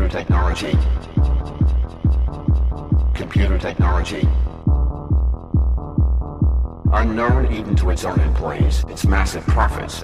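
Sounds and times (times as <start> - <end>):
heavy kick drum: 0.3 - 9.2.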